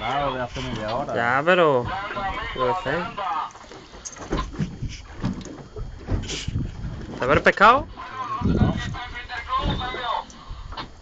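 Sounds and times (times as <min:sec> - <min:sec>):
men talking excitedly: 0:00.0 - 0:03.6, 0:07.2 - 0:10.3
water around a boat: 0:00.0 - 0:11.0
wind: 0:00.0 - 0:11.0.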